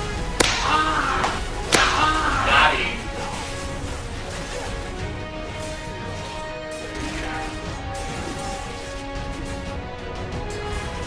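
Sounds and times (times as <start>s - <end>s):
whip crack: 0.3s - 3.7s.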